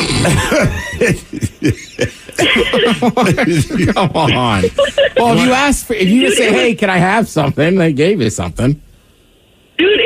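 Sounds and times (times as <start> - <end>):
people laughing: 0.2 - 5.6.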